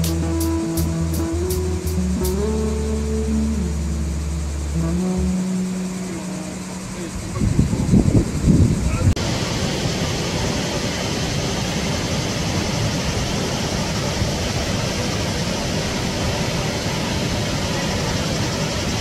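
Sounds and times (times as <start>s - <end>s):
waterfall rushing: 0.0s - 3.9s, 9.2s - 19.0s.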